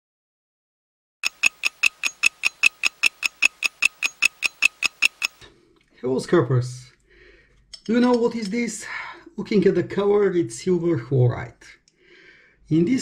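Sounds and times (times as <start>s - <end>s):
rapid mechanical ticking: 1.2s - 5.4s.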